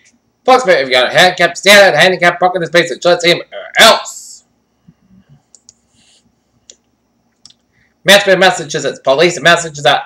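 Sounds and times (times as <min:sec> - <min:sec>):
faint clicks: 0:04.9 - 0:05.8, 0:06.6 - 0:07.7.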